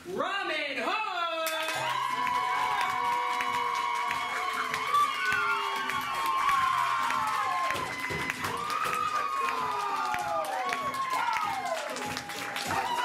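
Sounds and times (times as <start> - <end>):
audience cheering and clapping: 1.4 - 13.0.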